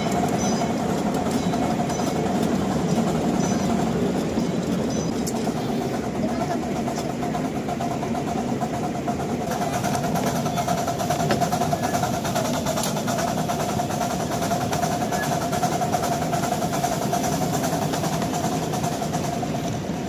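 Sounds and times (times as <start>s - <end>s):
miniature train running on track: 0.0s - 20.0s.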